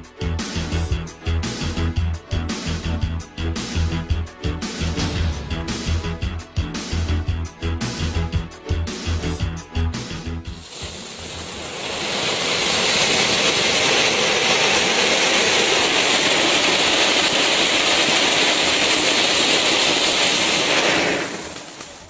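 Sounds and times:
music track: 0.0s - 10.7s
firework fountain hissing: 10.5s - 22.0s.

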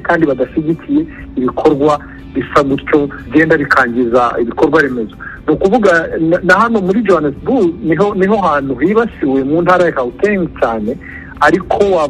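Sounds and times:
man speaking over telephone: 0.0s - 12.0s.

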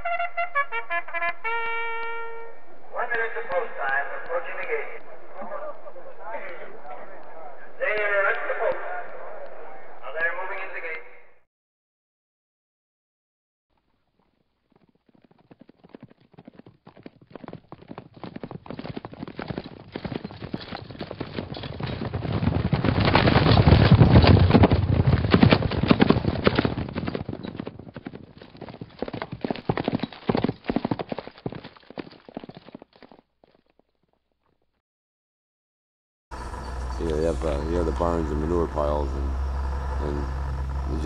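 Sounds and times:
hoofbeats of trotting horse: 13.9s - 34.2s.

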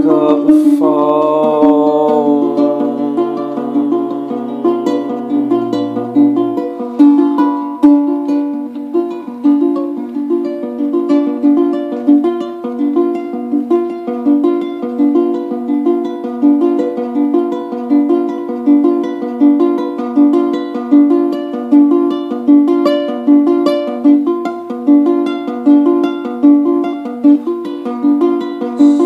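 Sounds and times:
ukulele fingerpicked: 0.0s - 29.0s.

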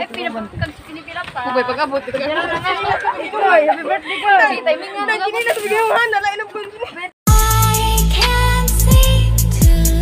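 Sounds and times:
people chatting: 0.0s - 7.1s.

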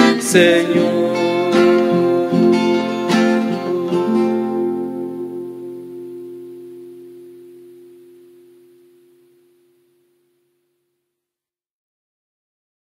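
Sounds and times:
acoustic guitar chord ringing: 0.0s - 10.6s.

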